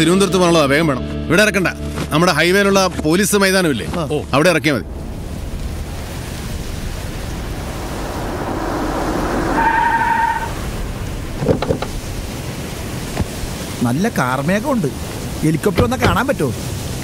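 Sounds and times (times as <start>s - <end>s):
wind noise: 4.2s - 13.8s
car approaching: 4.4s - 13.2s.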